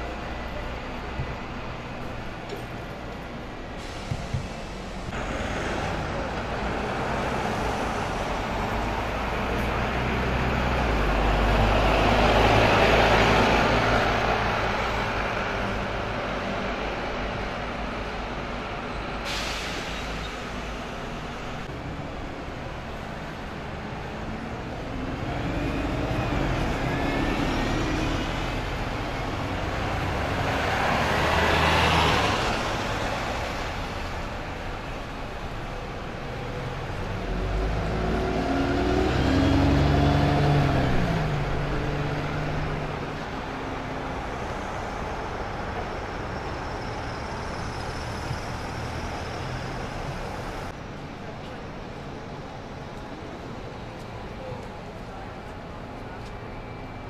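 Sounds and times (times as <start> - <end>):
buses and traffic passing: 0.0 - 57.0
air brake hiss: 3.8 - 5.0, 19.2 - 20.6.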